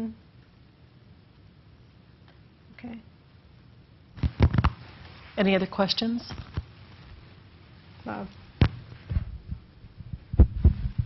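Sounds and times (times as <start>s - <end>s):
microphone handling thumps: 4.2s - 4.8s, 8.6s - 11.0s.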